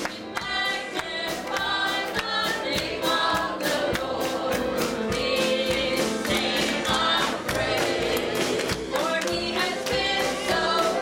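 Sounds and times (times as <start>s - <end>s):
women singing gospel song: 0.1s - 11.0s
steady beat: 0.4s - 11.0s.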